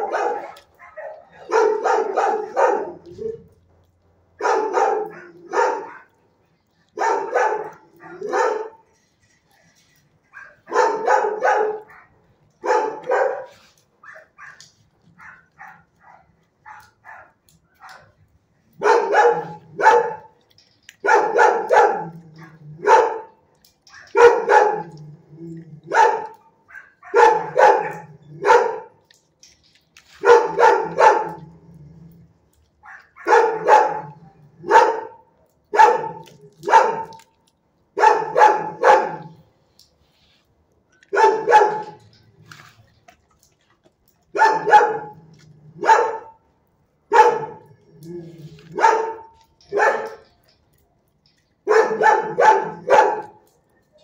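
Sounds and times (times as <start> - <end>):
dogs barking: 0.0 - 3.6, 4.3 - 6.2, 6.8 - 9.0, 10.3 - 29.2, 30.2 - 31.9, 32.7 - 39.4, 41.0 - 42.3, 44.1 - 50.6, 51.4 - 54.0.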